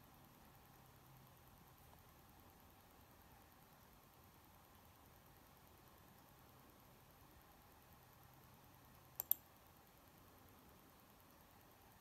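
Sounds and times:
computer mouse clicks: 9.1s - 9.5s.

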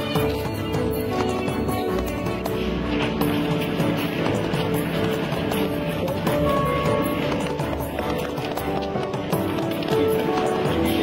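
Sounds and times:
music with melody and percussion: 0.0s - 11.0s.

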